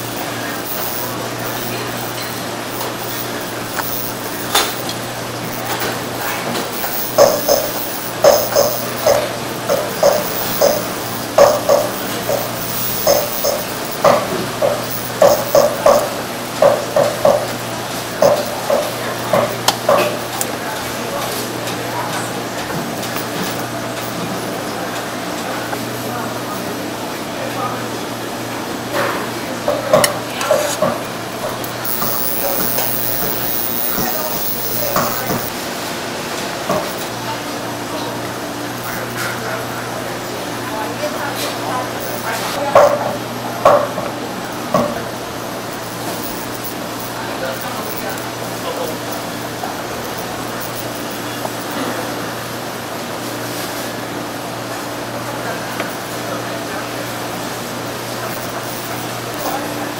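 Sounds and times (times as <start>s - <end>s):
person speaking: 0.0s - 16.1s, 31.5s - 35.5s, 40.8s - 52.2s
steady low hum: 0.0s - 27.2s, 31.0s - 53.3s.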